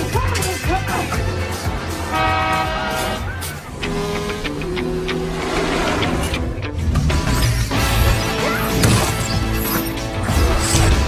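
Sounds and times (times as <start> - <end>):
loud horn blast: 2.0 - 3.4.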